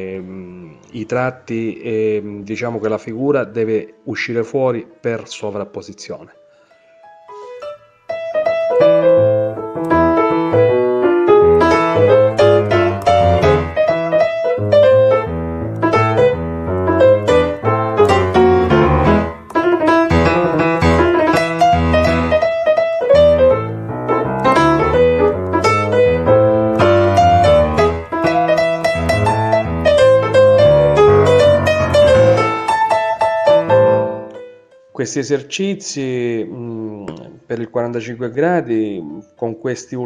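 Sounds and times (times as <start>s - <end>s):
background piano music: 0.0s - 36.4s.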